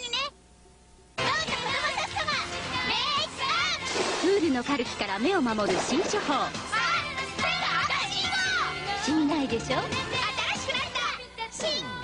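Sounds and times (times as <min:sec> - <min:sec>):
bright music: 0:01.3 - 0:11.1.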